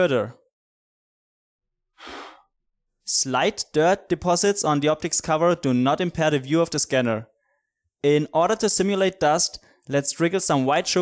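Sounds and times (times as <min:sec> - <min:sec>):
person blowing puff of air: 0:02.0 - 0:02.5.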